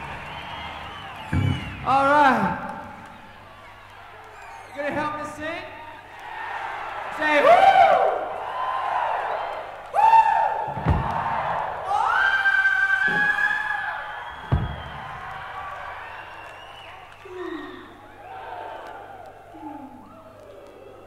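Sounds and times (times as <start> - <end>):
audience noise: 0.0 - 21.0
low thumps: 1.2 - 2.1, 10.7 - 11.6, 14.4 - 15.2.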